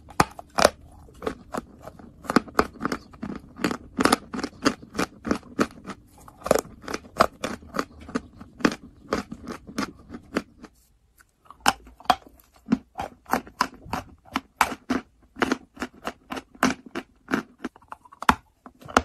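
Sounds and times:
chalk being chewed: 0:00.0 - 0:19.0.

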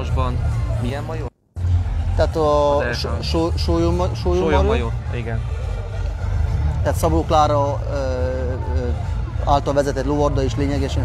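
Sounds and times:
man speaking: 0:02.2 - 0:05.4.

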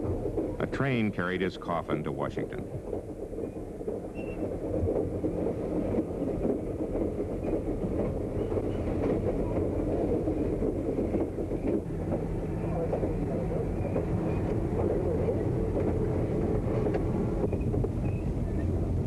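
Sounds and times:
train rumbling on rails: 0:00.0 - 0:19.0.

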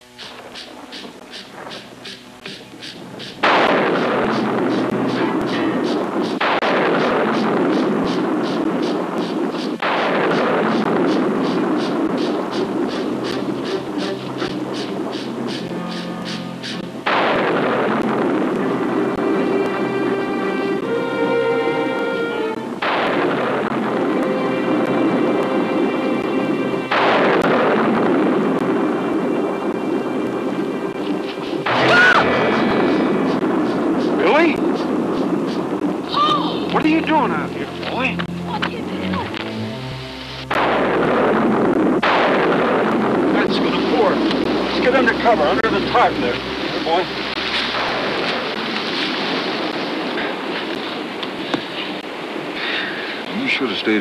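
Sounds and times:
dramatic film score music: 0:00.1 - 0:51.4
loud booms: 0:03.0 - 0:15.8, 0:16.8 - 0:19.5, 0:22.7 - 0:25.3, 0:26.9 - 0:29.9, 0:31.6 - 0:38.7, 0:40.4 - 0:51.2.

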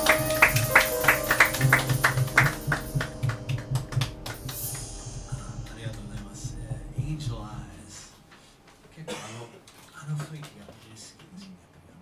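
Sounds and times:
audience clapping in time: 0:00.0 - 0:05.0, 0:05.6 - 0:06.6
live jazz band: 0:00.0 - 0:06.8.

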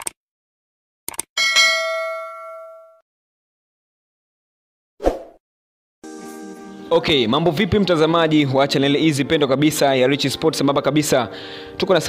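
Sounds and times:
bright bell ding: 0:01.4 - 0:03.0.

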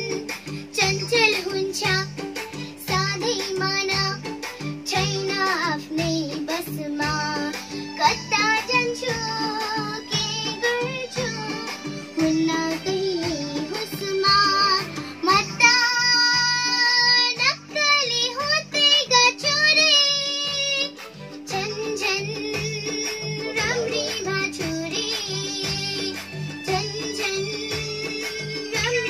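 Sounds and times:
backing track with steady beat: 0:00.0 - 0:29.0
girl singing: 0:00.0 - 0:29.0.

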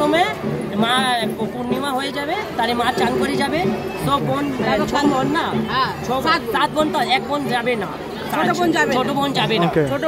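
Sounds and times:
people talking close by: 0:00.0 - 0:10.0
street crowd chatter: 0:00.0 - 0:10.0.

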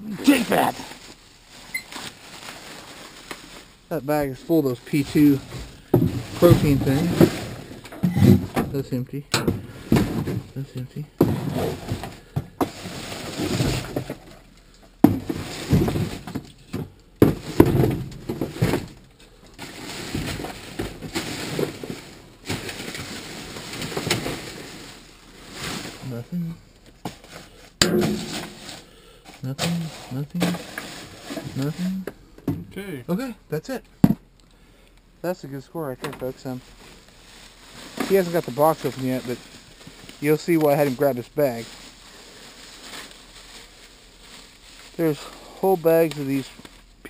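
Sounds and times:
plastic bags rustling: 0:00.0 - 0:08.9, 0:09.5 - 0:32.0, 0:35.4 - 0:47.0
cardboard boxes scraping: 0:04.8 - 0:08.6, 0:11.2 - 0:14.3, 0:19.6 - 0:32.0, 0:36.4 - 0:43.8.

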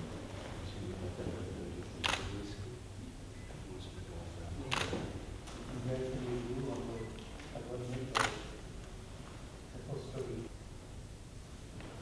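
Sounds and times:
camera shutter clicks: 0:02.0 - 0:02.3, 0:04.7 - 0:05.0, 0:08.1 - 0:08.5.

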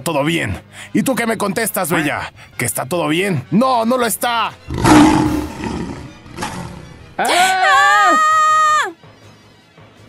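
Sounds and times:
loud monster roar: 0:04.7 - 0:07.1.

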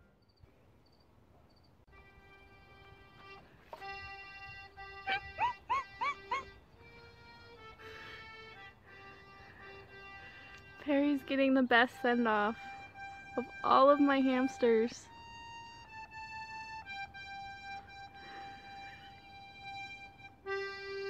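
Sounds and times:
accordion playing held chords: 0:01.9 - 0:21.0
short rising yelps: 0:05.0 - 0:06.6.

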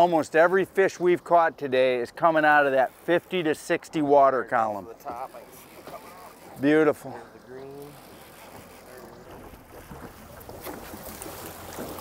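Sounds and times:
wind: 0:00.0 - 0:12.0
water washing: 0:04.8 - 0:12.0.

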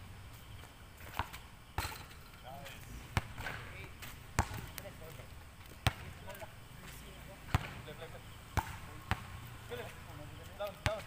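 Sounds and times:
basketball bouncing on concrete: 0:03.2 - 0:06.5, 0:07.5 - 0:07.8, 0:08.6 - 0:09.3, 0:10.6 - 0:11.0.

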